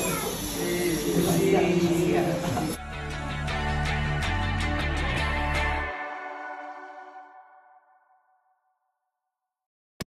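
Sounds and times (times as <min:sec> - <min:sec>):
children calling out together: 0:00.0 - 0:00.6.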